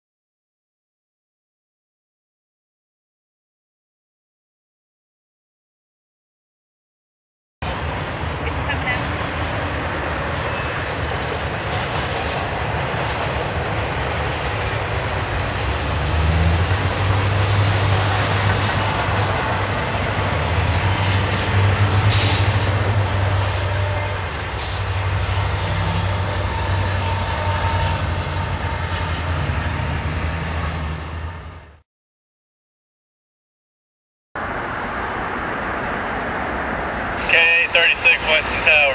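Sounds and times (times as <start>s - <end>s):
freight train rumbling: 7.6s - 31.8s, 35.2s - 38.9s
wheel squeals: 8.1s - 16.6s, 20.1s - 22.4s.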